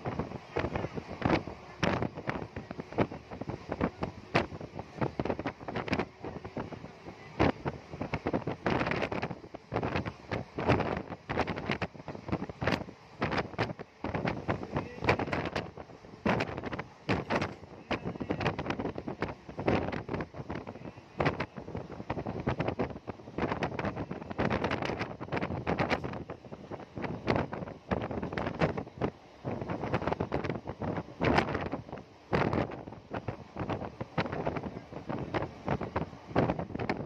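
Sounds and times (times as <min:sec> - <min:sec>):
train running noise: 0:00.0 - 0:37.0
wind buffeting microphone: 0:00.0 - 0:37.0.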